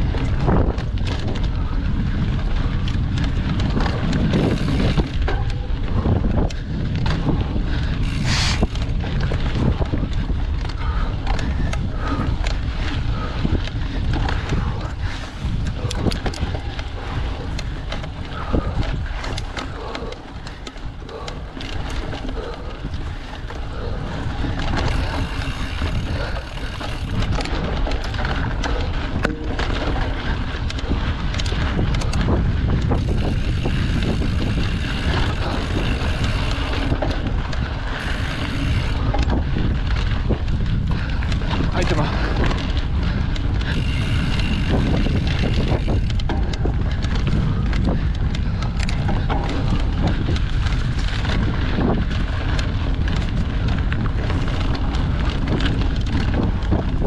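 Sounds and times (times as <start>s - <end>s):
bike rattling over bumps: 0.0s - 57.0s
bike tyres on dirt: 0.0s - 57.0s
wind buffeting microphone: 0.0s - 57.0s.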